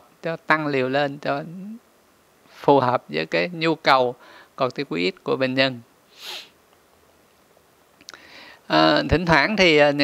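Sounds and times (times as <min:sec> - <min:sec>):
man sniffing: 0:06.1 - 0:06.6.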